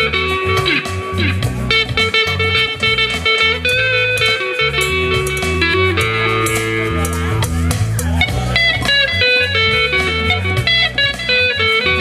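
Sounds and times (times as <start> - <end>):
bass line: 0.0 - 12.0
electric guitar lead: 0.0 - 12.0
keyboard: 0.0 - 12.0.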